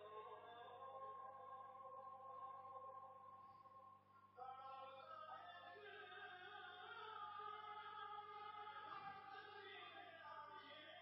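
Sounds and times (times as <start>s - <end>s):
person singing devotional poem: 0.0s - 11.0s.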